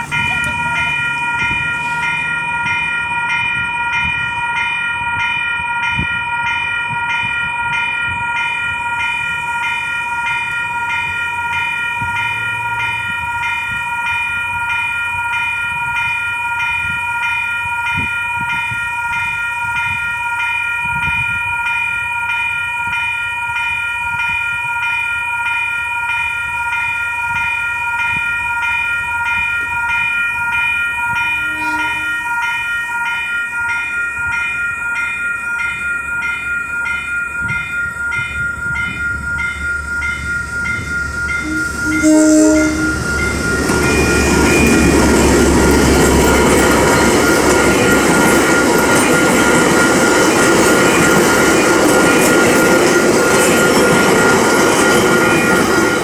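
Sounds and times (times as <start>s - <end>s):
diesel locomotive rumble: 0.0s - 20.1s, 27.0s - 56.0s
level crossing bells ringing: 0.0s - 56.0s.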